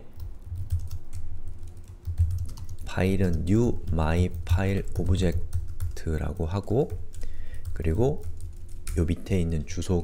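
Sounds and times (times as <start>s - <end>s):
computer keyboard typing: 0.0s - 9.3s.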